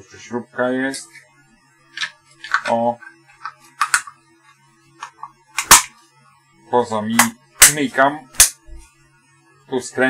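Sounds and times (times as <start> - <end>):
plastic case clicks: 3.4 - 4.1.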